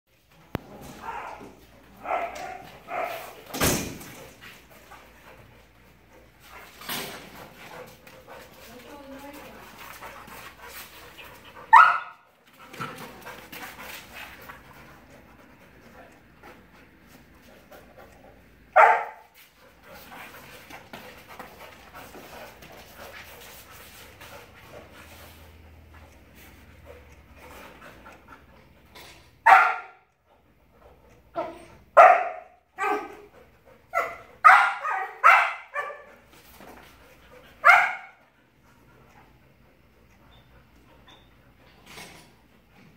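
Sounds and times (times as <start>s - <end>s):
dogs scuffling and mouthing: 0.2s - 11.8s, 12.4s - 18.6s
dog barking: 2.0s - 3.3s, 11.7s - 12.2s, 18.8s - 19.2s, 29.4s - 30.0s, 32.0s - 33.2s, 34.0s - 36.1s, 37.6s - 38.2s.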